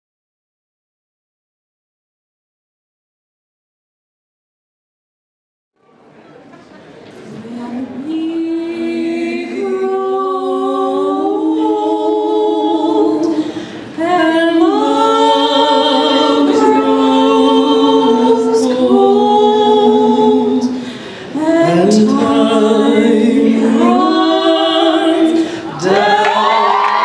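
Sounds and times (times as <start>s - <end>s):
woman singing unaccompanied: 7.3s - 13.4s, 14.0s - 27.0s.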